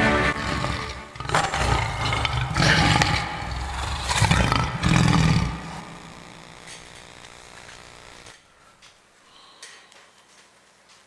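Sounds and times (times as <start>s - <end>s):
orchestral music: 0.0s - 1.6s
lion roaring: 0.0s - 6.3s.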